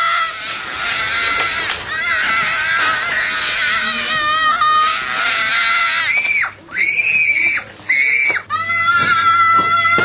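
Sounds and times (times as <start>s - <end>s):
child screaming: 0.0s - 10.0s.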